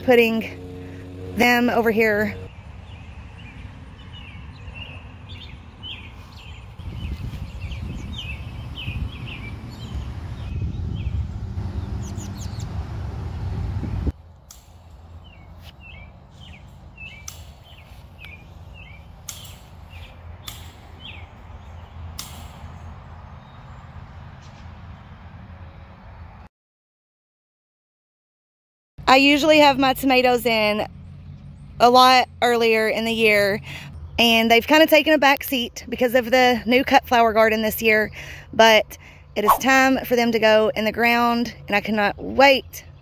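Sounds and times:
birds chirping: 0:00.0 - 0:26.0, 0:30.2 - 0:40.3.

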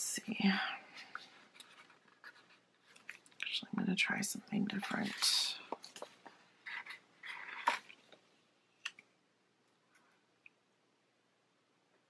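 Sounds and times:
paper rustling: 0:00.9 - 0:03.4, 0:04.7 - 0:08.2.

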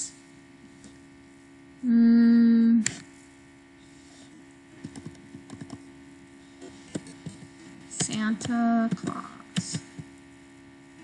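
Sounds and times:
faint electrical hum: 0:00.0 - 0:11.0
woman humming hmm: 0:01.8 - 0:02.9.

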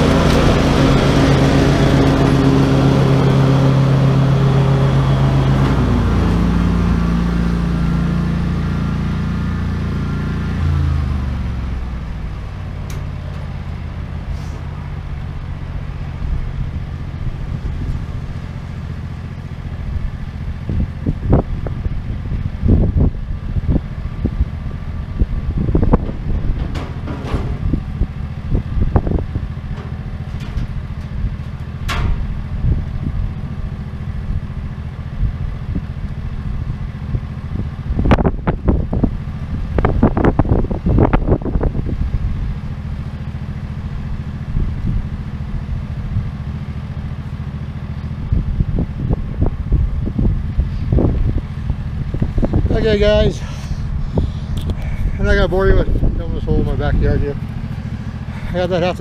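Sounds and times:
wind buffeting microphone: 0:15.1 - 0:43.2, 0:43.9 - 0:46.3, 0:48.2 - 0:59.0.

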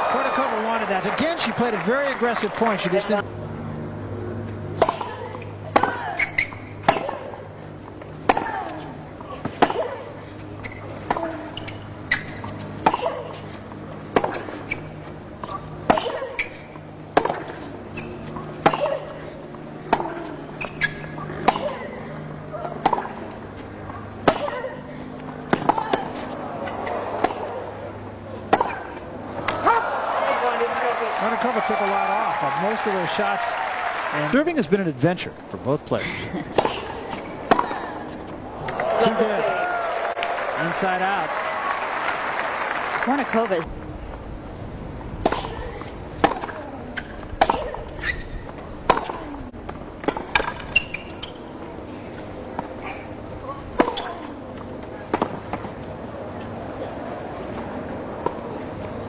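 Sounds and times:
crowd applause: 0:00.0 - 0:03.2, 0:29.4 - 0:34.6, 0:38.6 - 0:43.7
tennis ball struck by rackets: 0:04.7 - 0:07.5, 0:08.2 - 0:13.5, 0:14.1 - 0:19.2, 0:19.8 - 0:21.9, 0:22.5 - 0:29.8, 0:36.5 - 0:37.8, 0:45.2 - 0:45.6, 0:46.2 - 0:48.2, 0:48.8 - 0:51.4, 0:53.8 - 0:55.8.

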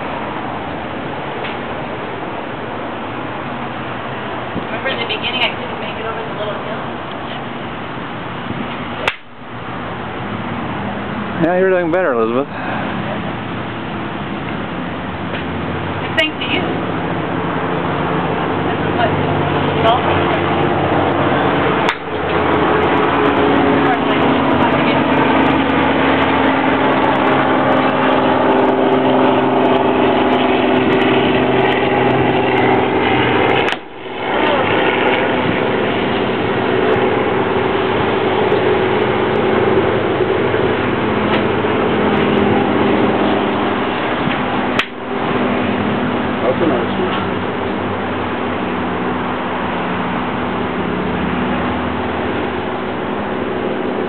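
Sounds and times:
engine-like drone: 0:00.0 - 0:54.0.

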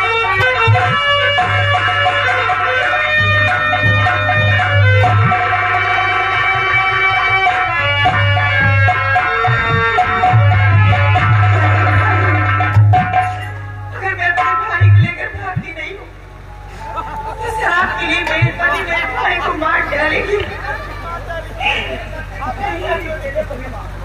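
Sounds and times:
folk melody: 0:00.0 - 0:23.3
hand drum: 0:00.3 - 0:05.7, 0:06.6 - 0:13.9
kettle drum rolls: 0:07.4 - 0:13.6.

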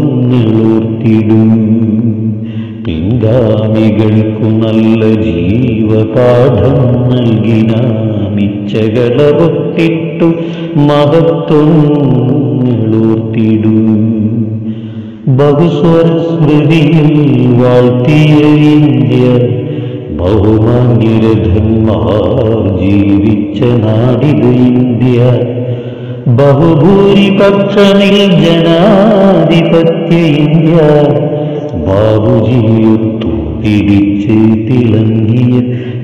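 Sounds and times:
person chanting a poem: 0:00.0 - 0:36.0.

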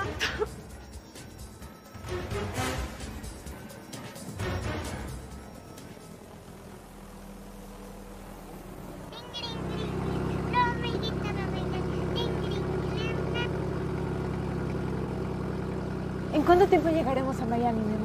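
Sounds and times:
propeller plane engine drone: 0:00.0 - 0:18.0.

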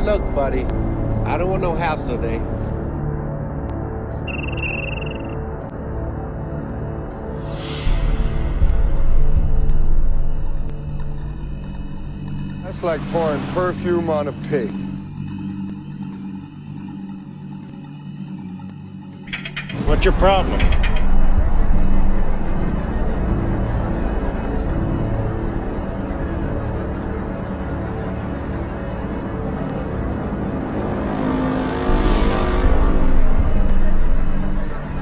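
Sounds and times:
loud noisy low drone: 0:19.3 - 0:35.0.

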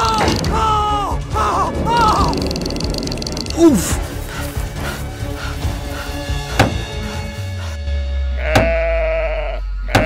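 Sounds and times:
background music: 0:00.0 - 0:10.0
sheep bleating: 0:08.4 - 0:10.0.

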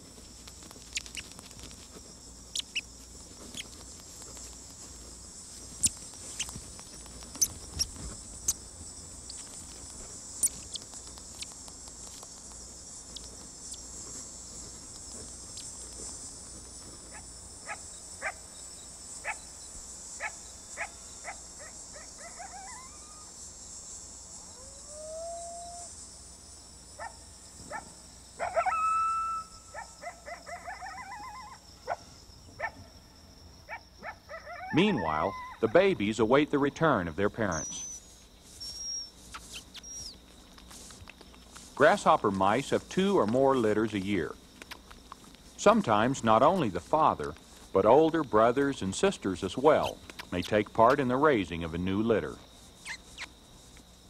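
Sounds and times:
crunching clicks of chewing: 0:00.0 - 0:18.4, 0:38.6 - 0:48.4, 0:49.7 - 0:51.1
night insects chorus: 0:00.0 - 0:54.0
animal yipping: 0:20.2 - 0:23.3, 0:27.0 - 0:32.0, 0:33.7 - 0:35.7, 0:38.6 - 0:40.2
animal howling: 0:22.2 - 0:23.3, 0:24.5 - 0:25.9, 0:28.4 - 0:31.6, 0:34.0 - 0:35.8.

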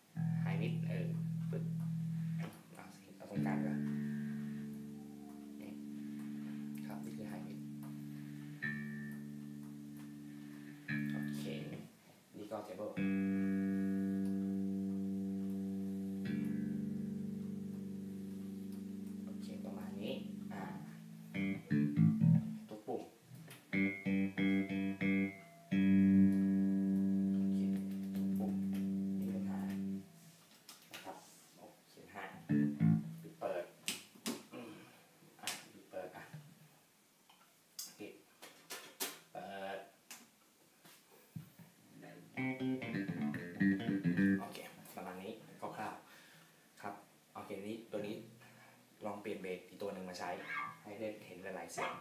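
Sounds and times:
electric bass guitar notes ringing: 0:00.0 - 0:11.8, 0:13.0 - 0:22.8, 0:23.7 - 0:30.2, 0:32.4 - 0:33.2, 0:42.2 - 0:44.6
muted bass guitar clicks: 0:03.4 - 0:04.0, 0:20.2 - 0:22.6, 0:23.5 - 0:30.0, 0:42.4 - 0:44.6.

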